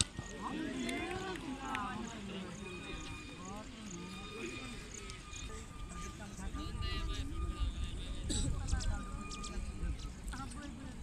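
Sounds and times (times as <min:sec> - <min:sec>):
distant voices talking: 0:00.0 - 0:11.0
wind rumble on microphone: 0:04.9 - 0:11.0.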